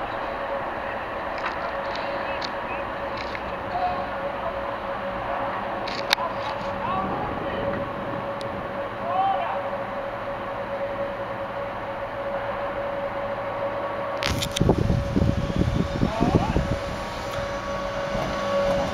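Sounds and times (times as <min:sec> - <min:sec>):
electric locomotive hum: 0:00.0 - 0:18.9
train rolling noise: 0:00.0 - 0:18.9.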